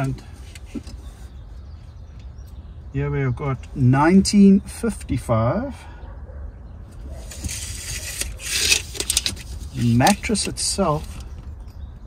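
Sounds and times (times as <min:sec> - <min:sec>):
tape measure sliding on fabric: 0:07.2 - 0:10.4.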